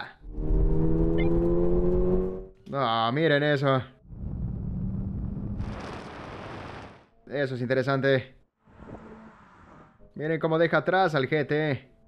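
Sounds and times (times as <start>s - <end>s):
sports car engine accelerating: 0.2s - 2.6s.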